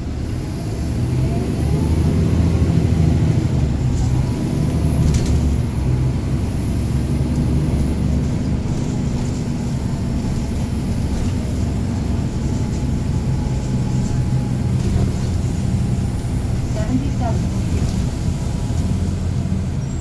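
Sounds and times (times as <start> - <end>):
bus diesel engine: 0.0 - 20.0.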